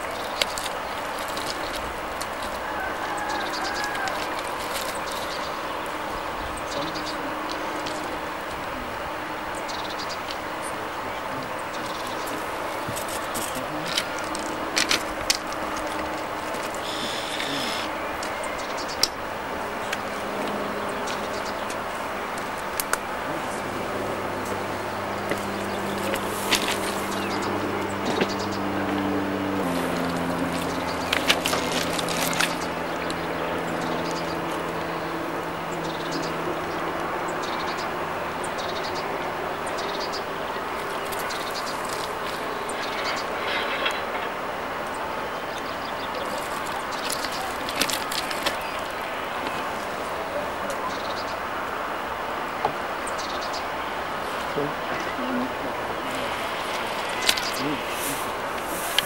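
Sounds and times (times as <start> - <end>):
constant hiss: 0.0 - 59.0.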